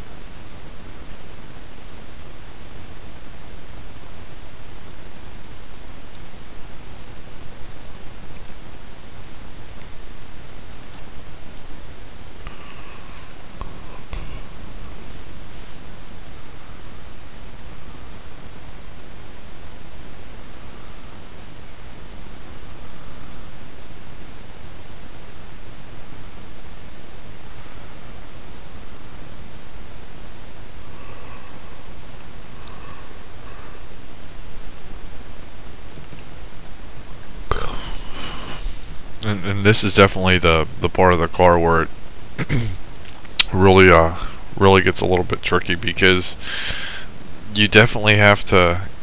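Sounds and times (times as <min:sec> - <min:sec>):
microphone hiss and rumble: 0:00.0 - 0:49.0.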